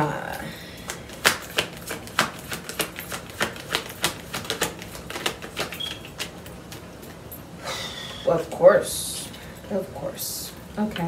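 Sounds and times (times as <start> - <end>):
cards being shuffled: 0.8 - 6.9.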